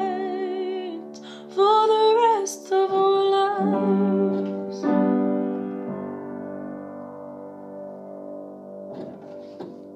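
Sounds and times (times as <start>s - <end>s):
held piano chord: 3.0s - 9.9s.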